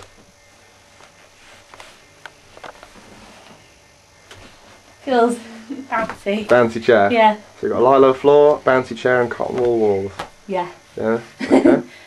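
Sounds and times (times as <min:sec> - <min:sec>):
faint rustling: 0:00.0 - 0:06.9.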